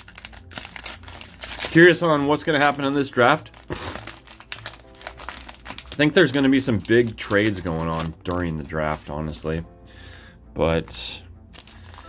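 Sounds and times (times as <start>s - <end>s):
cellophane wrapper crinkling: 0.0s - 9.4s, 11.4s - 12.0s
faint music: 0.0s - 12.0s.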